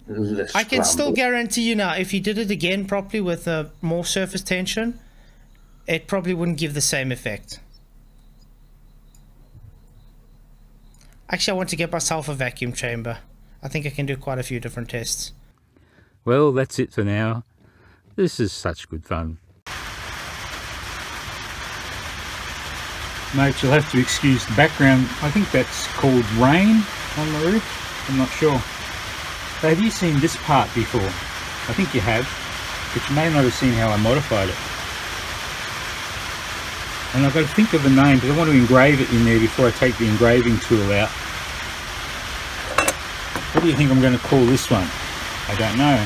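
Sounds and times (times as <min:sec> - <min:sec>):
rain on a roof: 0:19.7 - 0:46.0.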